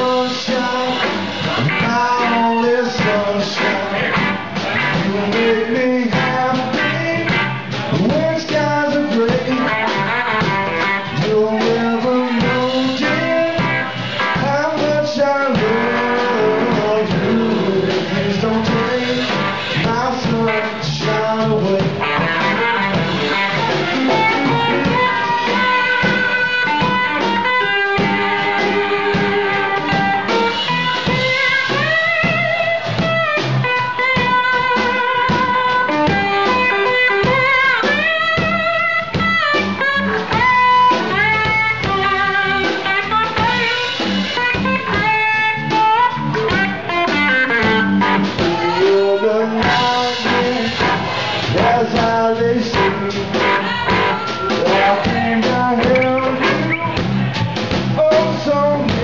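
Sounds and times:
bass guitar: 0.0 - 59.0
drum kit: 0.0 - 59.0
electric lead guitar: 0.0 - 59.0.

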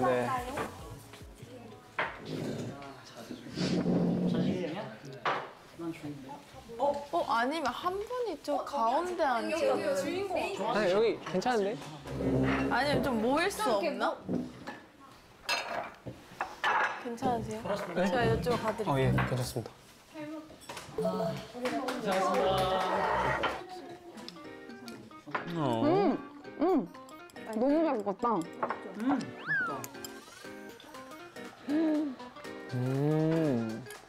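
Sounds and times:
light background music: 0.0 - 14.7, 17.1 - 19.7, 20.4 - 34.0
dishes and cutlery clattering: 11.2 - 13.5, 14.2 - 19.6, 20.5 - 21.0, 27.0 - 31.2
person humming while tasting: 25.5 - 27.0, 31.6 - 34.0
cartoon sliding sound effect: 29.4 - 30.8.

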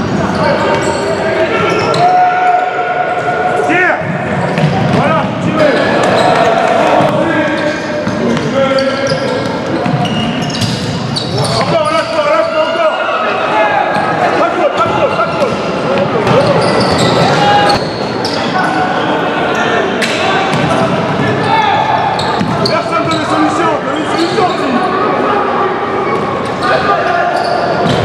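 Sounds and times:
players shouting: 0.2 - 10.6, 11.2 - 28.0
shoes squeaking: 4.4 - 12.9, 13.9 - 18.8, 21.4 - 24.9.

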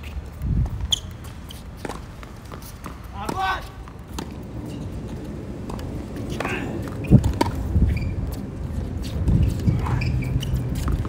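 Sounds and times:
shoe squeak: 0.0 - 3.0, 6.4 - 11.0
quick footsteps on hard court: 0.0 - 11.0.

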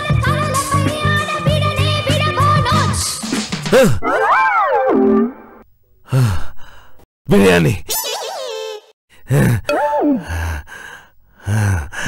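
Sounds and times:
man sighing: 6.0 - 7.0, 9.3 - 12.0.

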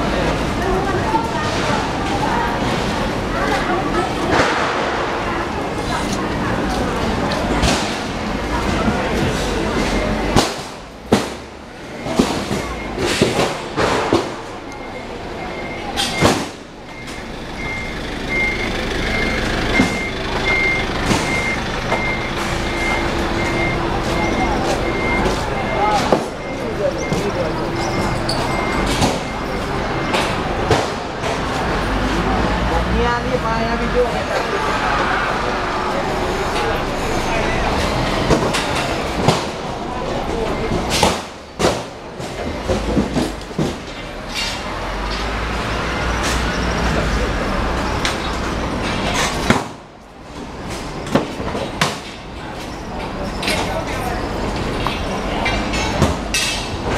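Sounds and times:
street noise: 0.0 - 56.9
traffic rumble: 0.0 - 56.9
reversing alarm beeping: 11.7 - 13.6, 14.4 - 30.7, 40.1 - 41.0.

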